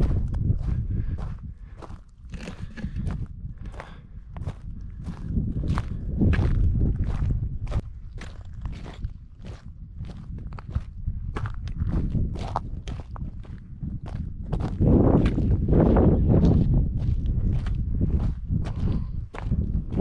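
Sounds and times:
footsteps crunching on gravel: 0:00.0 - 0:20.0
low rumble: 0:00.0 - 0:20.0.

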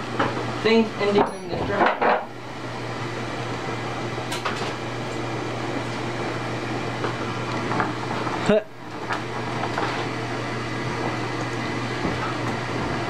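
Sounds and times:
steady mechanical hum: 0:00.0 - 0:13.0.

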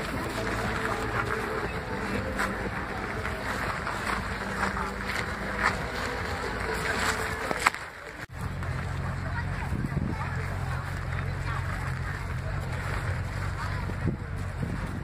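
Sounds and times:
car engine humming: 0:00.0 - 0:15.0
faint voices: 0:00.0 - 0:15.0
wind buffeting microphone: 0:09.3 - 0:15.0.

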